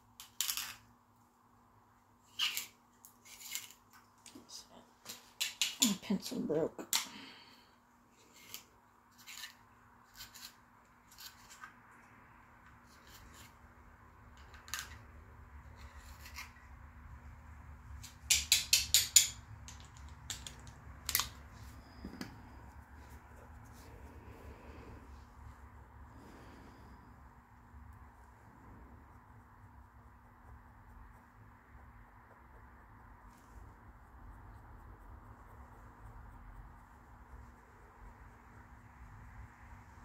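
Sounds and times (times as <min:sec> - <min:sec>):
faint low hum: 0:00.0 - 0:40.0.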